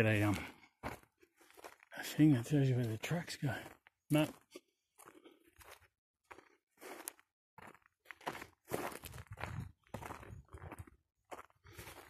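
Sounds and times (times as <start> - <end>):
footsteps on dirt and grass: 0.0 - 12.0.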